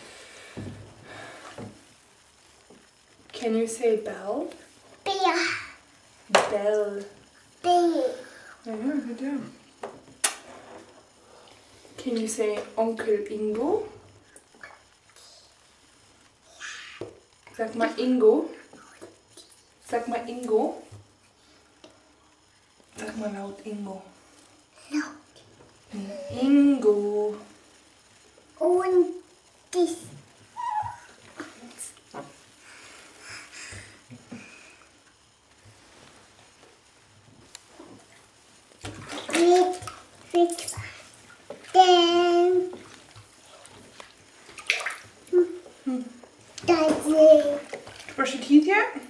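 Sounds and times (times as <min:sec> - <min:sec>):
toddler making vocal sounds: 0:30.6 - 0:31.2
water sloshing: 0:38.0 - 0:45.3, 0:46.9 - 0:48.5.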